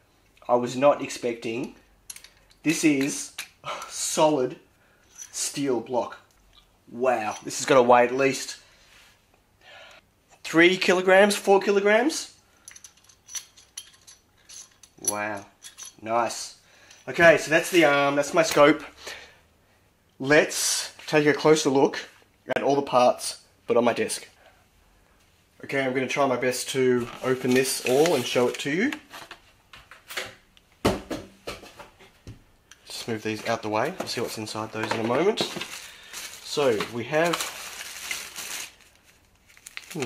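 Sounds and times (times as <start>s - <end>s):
metal parts clicking and clinking: 1.6s - 3.6s, 5.1s - 5.6s, 12.6s - 16.0s.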